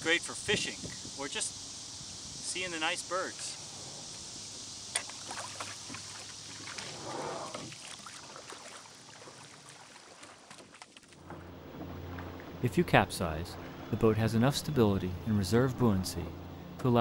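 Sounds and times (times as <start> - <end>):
water swishing around oars: 5.0 - 12.6.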